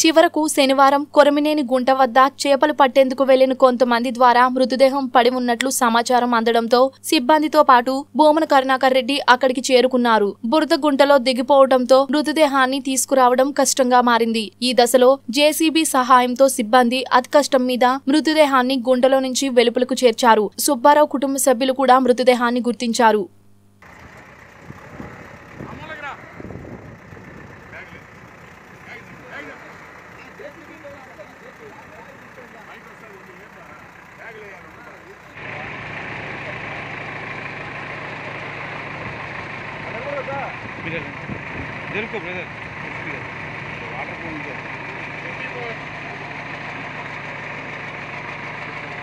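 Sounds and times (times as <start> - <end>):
diesel engine running: 23.8 - 49.0
men talking: 25.5 - 26.6, 27.5 - 37.0, 39.8 - 46.2.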